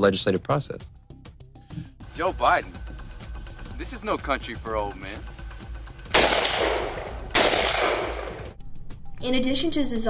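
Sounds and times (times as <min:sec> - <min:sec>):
rifle shots with long echo: 0:06.1 - 0:08.6.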